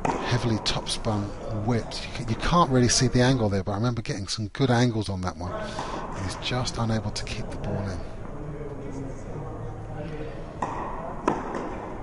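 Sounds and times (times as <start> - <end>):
tennis balls struck by rackets: 0.0 - 0.6, 10.5 - 12.0.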